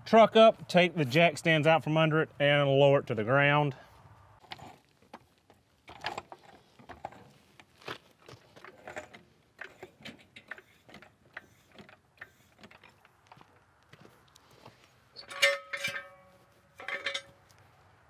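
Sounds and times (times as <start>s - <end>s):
metal jack stands clanking: 8.6s - 13.1s, 15.2s - 17.5s
footsteps: 11.7s - 15.1s.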